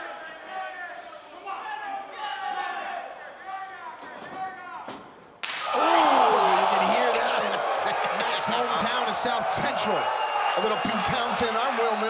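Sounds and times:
sharp slap: 5.4s - 5.8s
crowd cheering and shouting: 5.5s - 12.0s.

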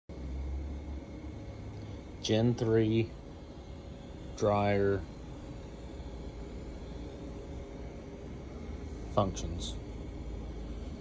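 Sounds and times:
machinery hum and hiss: 0.1s - 11.0s.

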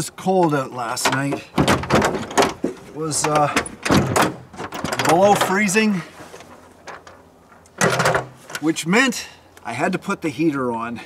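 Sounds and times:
faint rustling: 1.0s - 8.8s.

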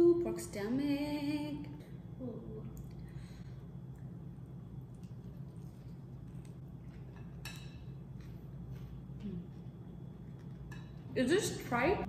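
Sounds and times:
low steady hum: 0.0s - 12.0s
chewing: 4.8s - 11.1s.

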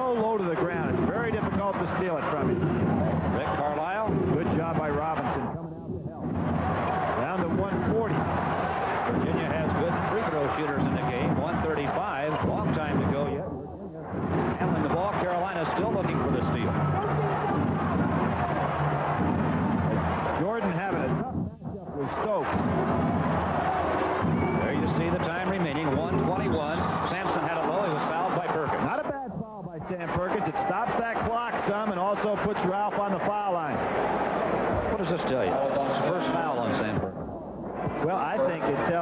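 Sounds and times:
crowd cheering and yelling: 0.1s - 39.0s.

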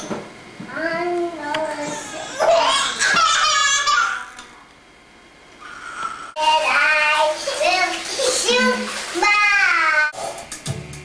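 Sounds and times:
baby babbling: 1.6s - 3.1s.

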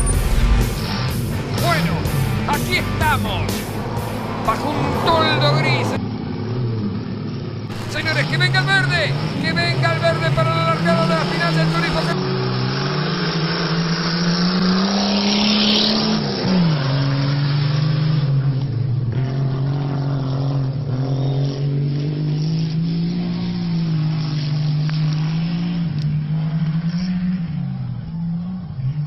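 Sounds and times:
race car engines accelerating: 0.0s - 29.0s.

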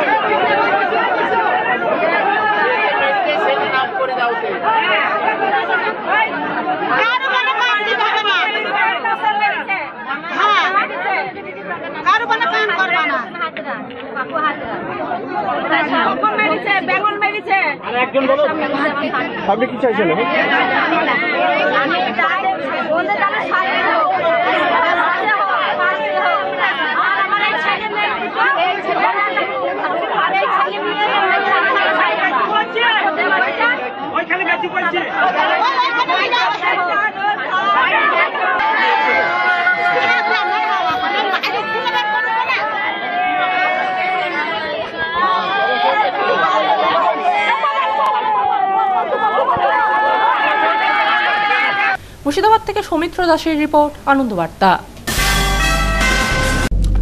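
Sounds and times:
overlapping voices and chatter: 0.0s - 57.0s.

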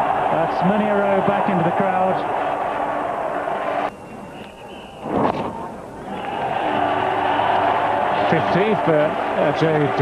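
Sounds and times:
stadium crowd cheering and applauding: 0.0s - 3.9s, 6.0s - 10.0s.

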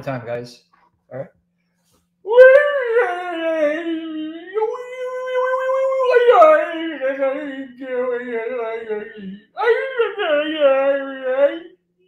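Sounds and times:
man wailing: 2.3s - 11.8s.

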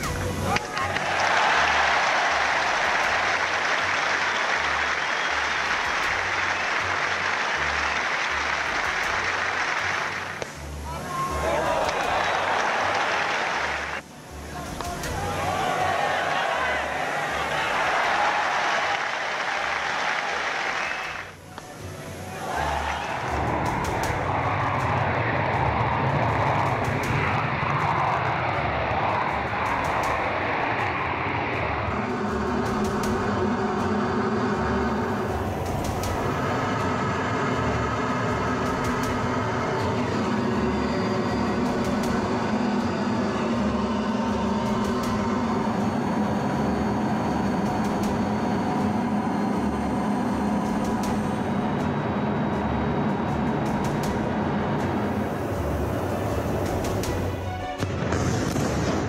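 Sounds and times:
aircraft engines droning: 0.0s - 59.0s
rushing noise: 0.0s - 59.0s.

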